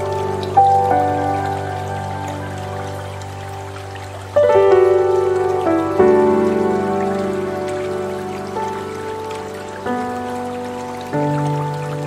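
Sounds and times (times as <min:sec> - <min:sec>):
soft solo piano: 0:00.0 - 0:12.0.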